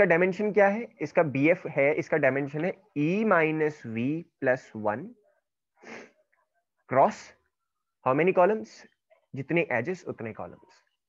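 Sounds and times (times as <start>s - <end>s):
person speaking: 0.0s - 6.2s
sharp breath in: 5.8s - 6.2s.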